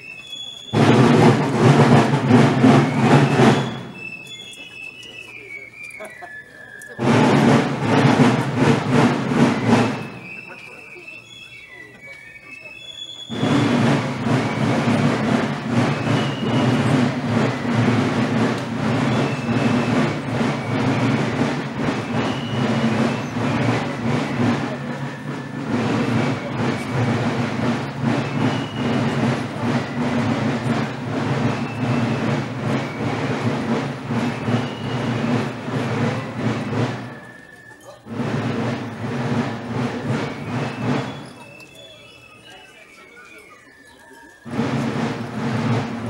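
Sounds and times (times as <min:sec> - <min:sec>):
marching drums rattling roll: 0:00.0 - 0:46.0.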